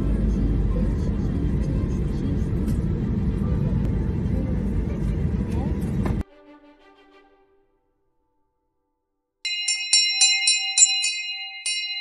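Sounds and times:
ringing bell chime: 0:09.5 - 0:12.0.

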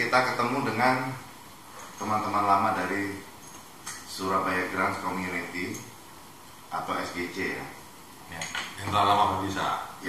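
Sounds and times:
men talking: 0:00.0 - 0:03.4, 0:04.0 - 0:06.0, 0:06.7 - 0:10.0
tableware clinking: 0:08.3 - 0:08.9.

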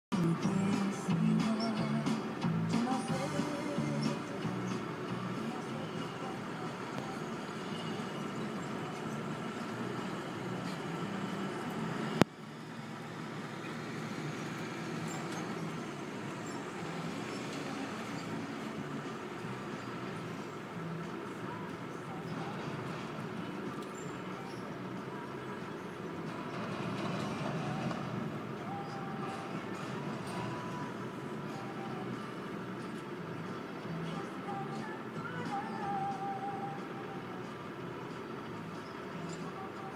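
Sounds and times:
diesel truck engine rumble: 0:00.1 - 0:39.9.

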